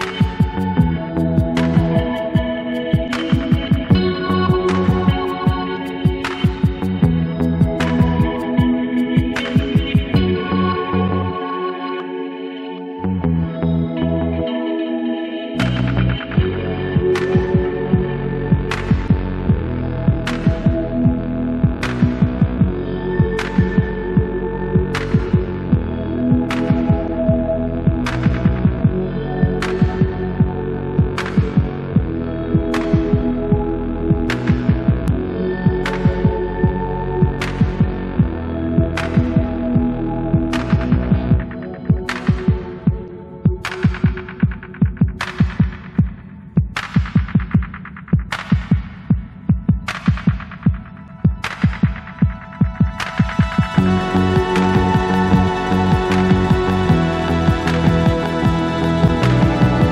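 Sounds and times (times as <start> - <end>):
background music with throbbing pulse: 0.0 - 59.9.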